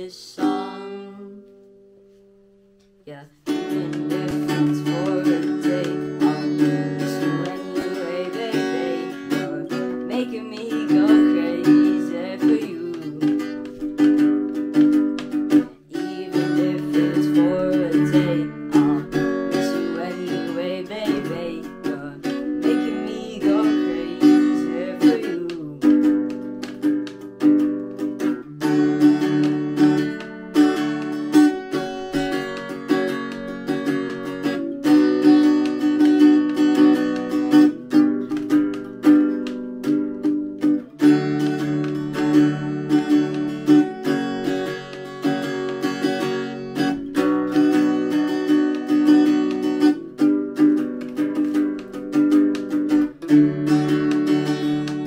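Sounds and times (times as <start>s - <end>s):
acoustic guitar strumming chords: 0.0s - 55.0s.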